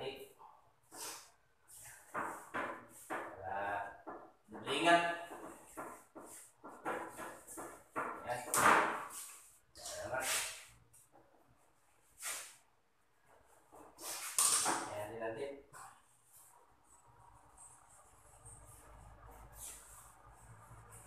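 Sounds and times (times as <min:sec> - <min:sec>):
electrical wires scraping and rustling: 0:13.3 - 0:14.9, 0:15.8 - 0:21.0.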